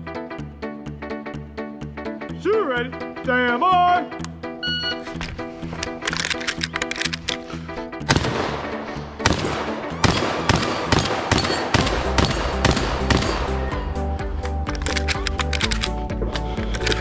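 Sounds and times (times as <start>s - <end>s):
background music: 0.0s - 17.0s
shotgun shots: 8.0s - 13.7s.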